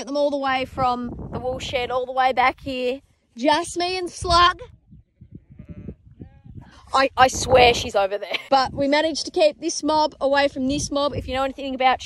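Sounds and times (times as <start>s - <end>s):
sheep bleating faintly: 5.1s - 6.6s.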